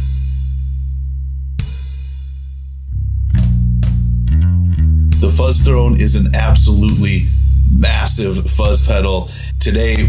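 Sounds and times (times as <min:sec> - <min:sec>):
distorted bass guitar riff: 0:00.0 - 0:10.0.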